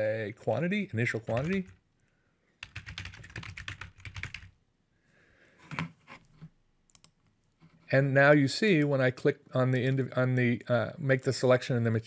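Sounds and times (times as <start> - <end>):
typing on computer keyboard: 1.2 - 1.8, 2.6 - 4.5.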